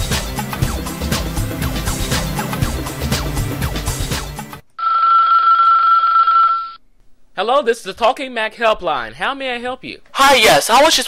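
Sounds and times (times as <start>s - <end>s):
music: 0.0s - 4.7s
telephone ringing: 4.8s - 6.8s.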